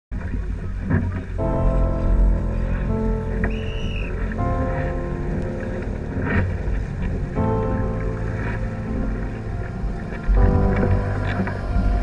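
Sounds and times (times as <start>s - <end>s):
water rushing along hull: 0.1s - 12.0s
wind rumbling on microphone: 0.1s - 12.0s
music with steady notes: 0.8s - 12.0s.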